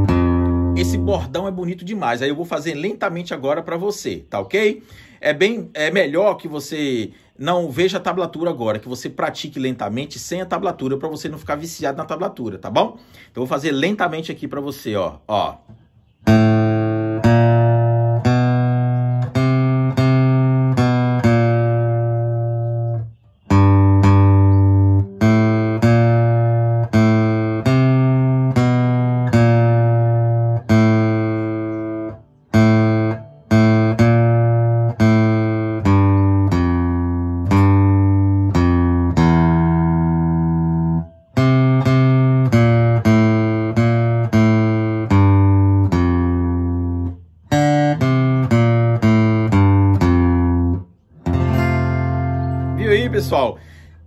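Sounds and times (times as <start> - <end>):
acoustic guitar bass notes plucked: 0.0 - 4.4, 15.6 - 54.0.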